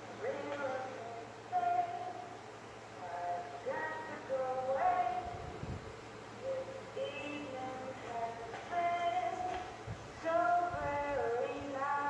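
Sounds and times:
woman singing through tv speaker: 0.0s - 12.0s.

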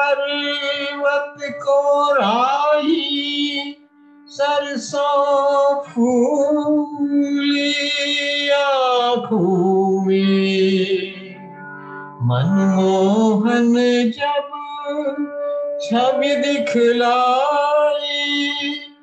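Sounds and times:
man singing with vibrato: 0.0s - 19.0s.

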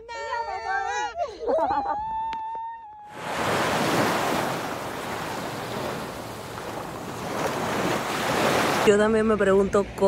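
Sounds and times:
ocean waves breaking: 3.1s - 9.0s.

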